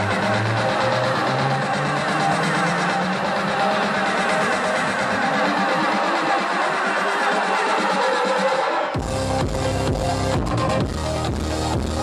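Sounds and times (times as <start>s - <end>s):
sweeping synth glides: 0.0s - 10.8s
electronic dance music: 0.0s - 12.0s
deep bass: 9.0s - 12.0s.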